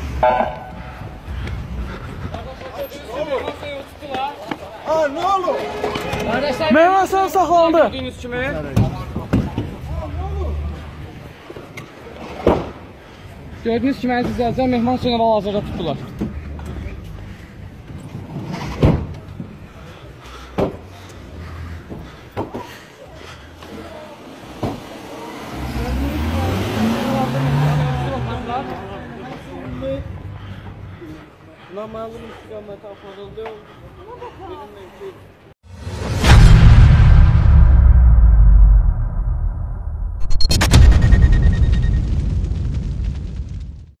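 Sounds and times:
van engine revving: 24.0s - 29.0s
deep boom impact: 35.7s - 44.0s.

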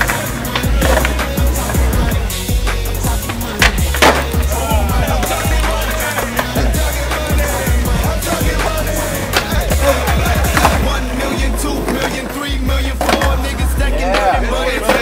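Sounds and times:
music: 0.0s - 15.0s
skateboard clacks: 0.0s - 15.0s
skateboard wheels rolling on concrete: 0.0s - 15.0s.

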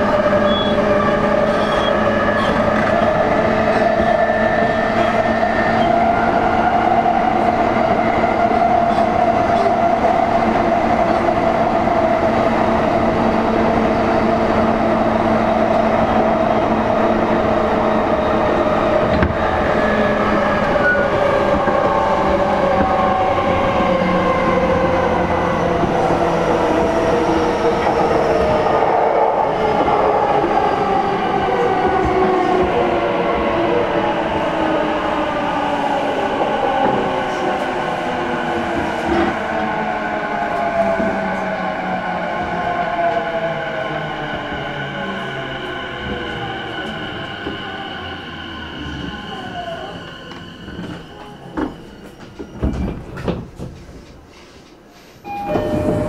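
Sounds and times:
train wheel and running noise: 55.0s - 56.0s.

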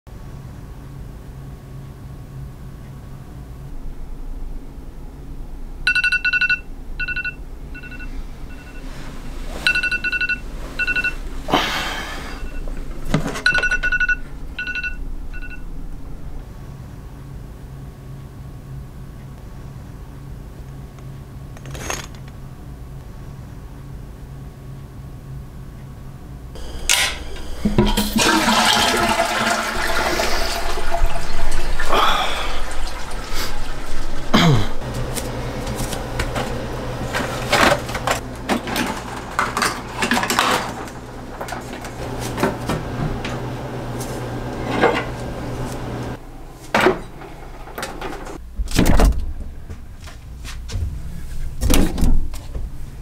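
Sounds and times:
phone alarm beeps: 5.9s - 8.9s, 9.6s - 11.2s, 12.4s - 12.7s, 13.4s - 15.7s.

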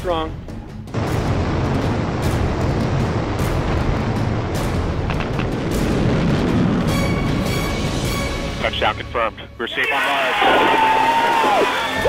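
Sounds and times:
music: 0.0s - 12.0s
rocket thruster rushing noise: 0.9s - 8.8s, 10.4s - 12.0s.

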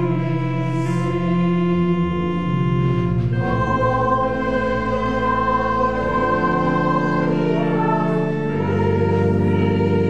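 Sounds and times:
choir singing sustained chords: 0.0s - 10.0s.

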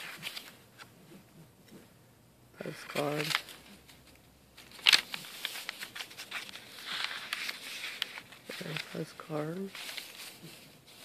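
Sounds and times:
paper rustling: 0.0s - 0.9s, 2.6s - 11.0s.

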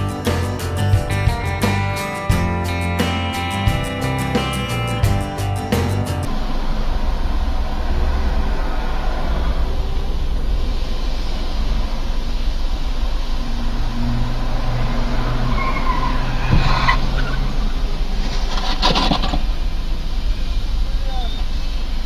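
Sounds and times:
car engine and road rumble: 0.0s - 22.0s.

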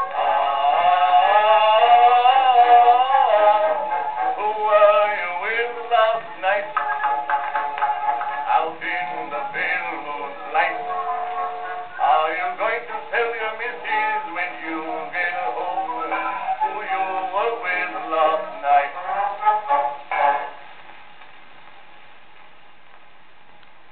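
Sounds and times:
old gramophone record of man singing: 0.0s - 20.7s.

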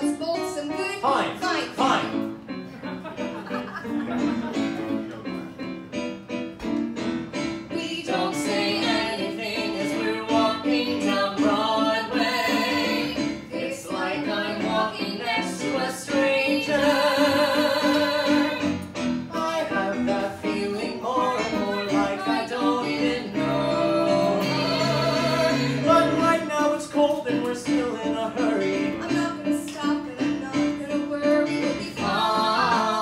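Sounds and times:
keyboard piano sound: 0.0s - 33.0s.

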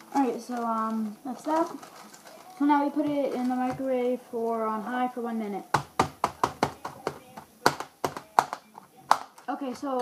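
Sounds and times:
plastic tray taps and clicks: 5.8s - 10.0s.

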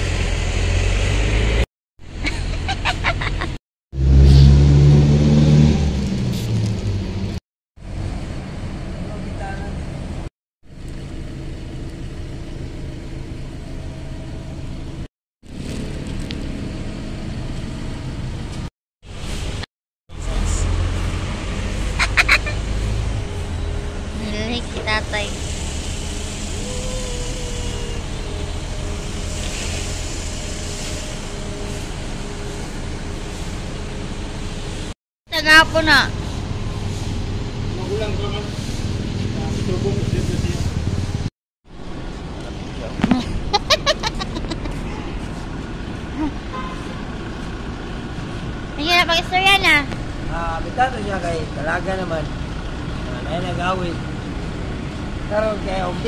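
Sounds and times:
street ambience: 0.0s - 56.0s
vehicle engine rumbling: 0.0s - 56.0s.

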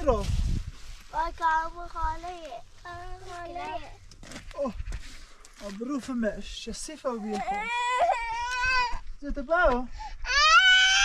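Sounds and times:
young child crying: 7.3s - 9.0s, 10.2s - 11.0s.

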